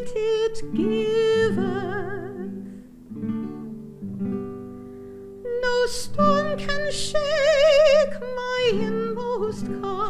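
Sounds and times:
classical guitar strumming chords: 0.0s - 10.0s.

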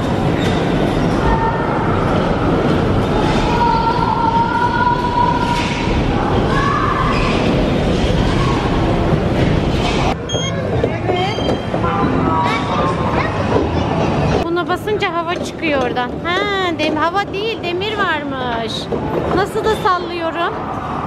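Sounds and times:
electronic beeps and chirps: 10.2s - 10.6s.

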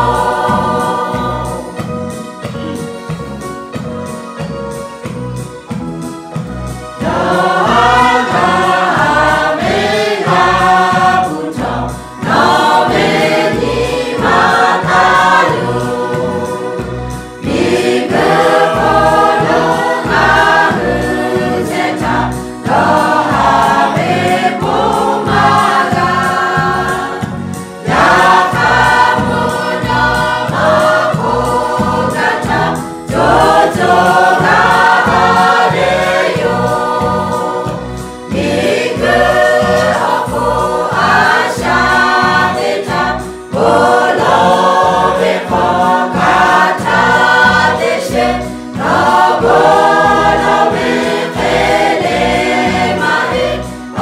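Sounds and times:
mixed choir singing: 0.0s - 2.9s, 6.4s - 54.0s.

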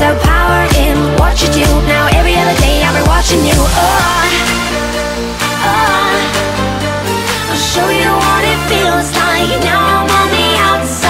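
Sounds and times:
pop music with deep bass: 0.0s - 11.0s.

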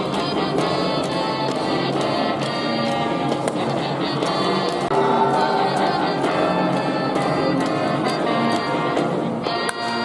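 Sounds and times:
instruments playing along: 0.0s - 10.0s
crowd singing in unison: 4.3s - 8.6s
crowd cheering: 4.6s - 8.5s.

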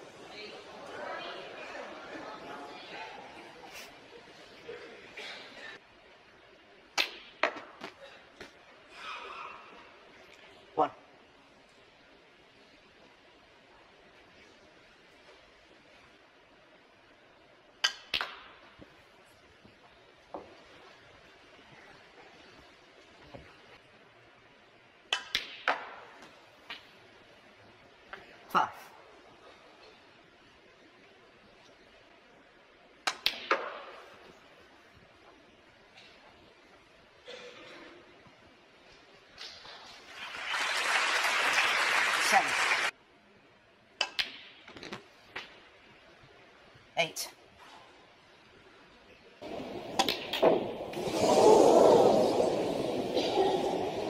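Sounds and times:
crowd noise: 0.0s - 5.9s, 39.8s - 43.0s, 49.4s - 54.0s
balls colliding clicks: 6.9s - 8.0s, 17.8s - 18.9s, 25.1s - 27.0s, 33.0s - 34.0s, 44.0s - 45.7s, 49.4s - 51.3s.

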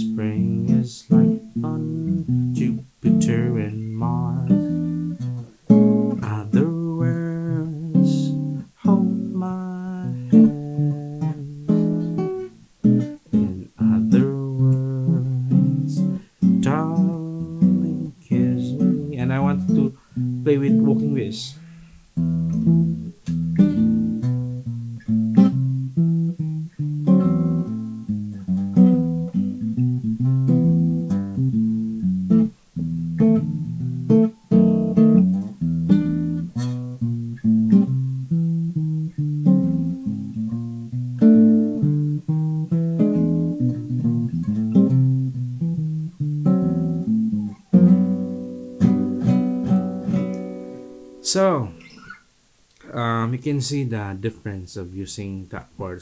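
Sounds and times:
acoustic guitar chords: 0.0s - 56.0s.

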